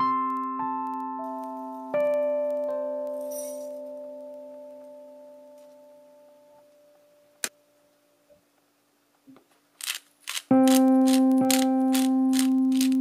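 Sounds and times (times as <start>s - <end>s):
keyboard chord music: 0.0s - 7.4s, 10.5s - 13.0s
spice grinder rasping: 9.8s - 13.0s.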